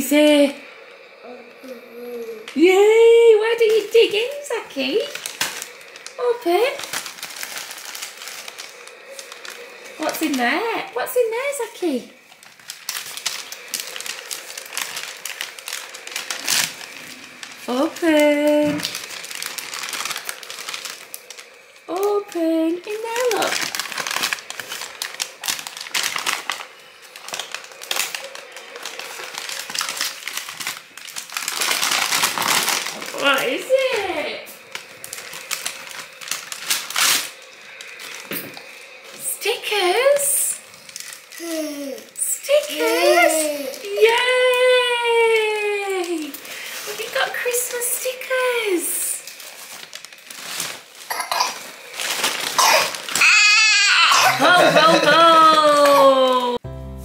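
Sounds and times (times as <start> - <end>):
wrapping paper crinkling: 3.4 - 56.6
young child vocal calls: 53.2 - 54.5.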